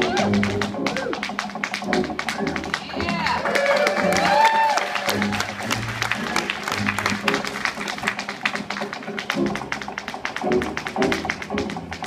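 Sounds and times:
tap shoes on wooden board: 0:00.0 - 0:04.4, 0:05.2 - 0:12.0.

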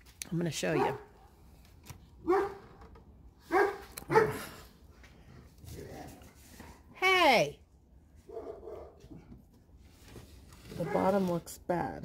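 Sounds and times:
dog barking: 0:00.7 - 0:01.1, 0:02.2 - 0:02.6, 0:03.5 - 0:04.5, 0:08.3 - 0:09.1, 0:10.7 - 0:11.2.

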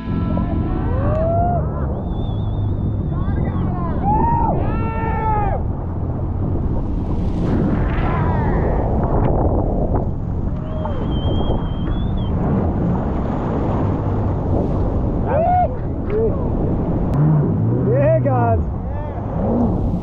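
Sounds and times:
people hooting and shouting: 0:00.0 - 0:05.7, 0:15.3 - 0:16.3
surf breaking: 0:00.0 - 0:20.0
wind on microphone: 0:00.0 - 0:20.0.

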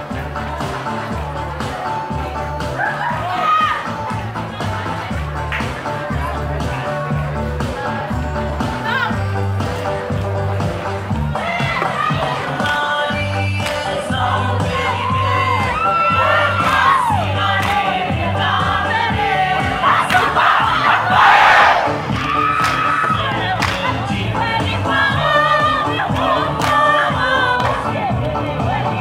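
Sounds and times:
women chanting and singing: 0:11.2 - 0:29.0
group shouting: 0:14.7 - 0:17.4, 0:19.6 - 0:23.5.

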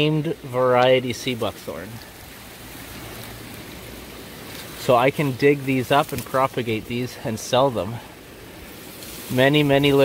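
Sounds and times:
running water hissing: 0:00.0 - 0:10.0.

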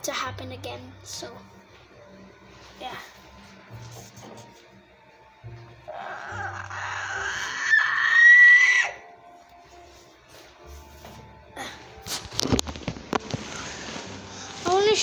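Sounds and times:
quiet background music: 0:00.0 - 0:15.0
child screeching: 0:05.9 - 0:09.0
tablet handling knocks and rustling: 0:12.1 - 0:13.4.

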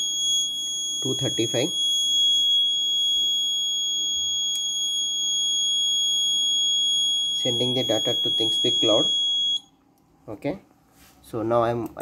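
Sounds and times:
high-pitched alarm buzzer tone: 0:00.0 - 0:09.7.

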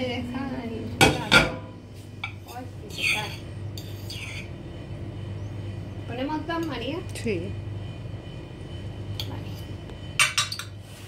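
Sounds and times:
cutlery scraping: 0:02.2 - 0:04.5
cutlery clinking on glass and ceramic: 0:10.2 - 0:10.8.

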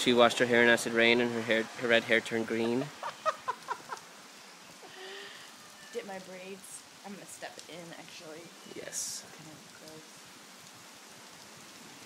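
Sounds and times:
rain falling: 0:00.0 - 0:12.0.

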